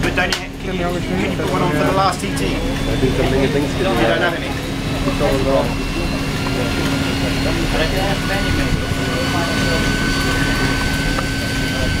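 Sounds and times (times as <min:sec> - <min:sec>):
bicycle trainers whirring: 0:00.0 - 0:12.0.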